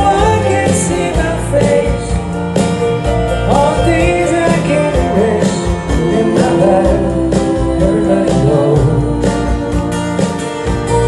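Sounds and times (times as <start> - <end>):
live country-rock band: 0.0 - 11.0.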